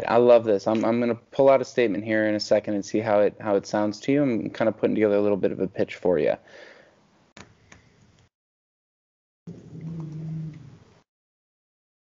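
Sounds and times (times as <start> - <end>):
person humming: 9.5 - 10.8.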